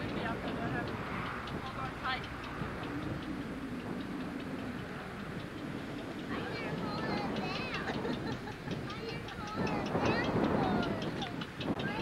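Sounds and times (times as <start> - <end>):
blimp engines humming: 0.0 - 12.0
faint ticking: 0.0 - 12.0.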